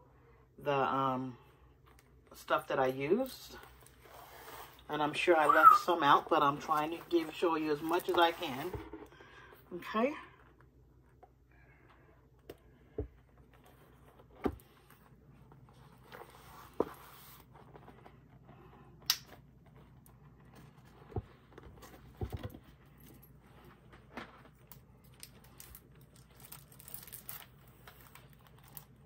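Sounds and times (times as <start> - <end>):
faint paper rustle: 6.3 - 9.5.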